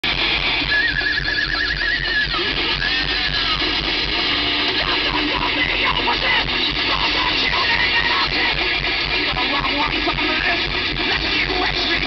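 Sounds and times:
live thrash metal band: 0.0s - 12.0s.

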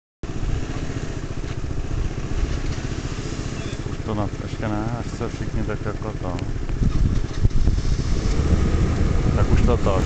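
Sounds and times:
scooter engines running: 0.2s - 10.0s.

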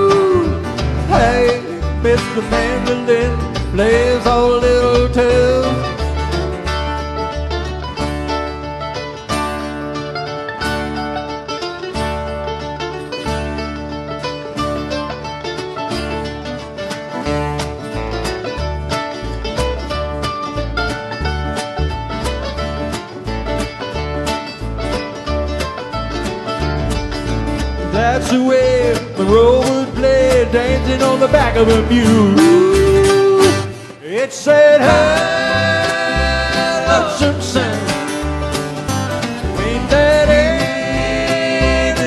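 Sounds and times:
walking upright bass: 0.0s - 33.8s, 34.5s - 42.0s
picked acoustic guitar: 0.0s - 42.0s
strummed guitar: 0.0s - 42.0s.

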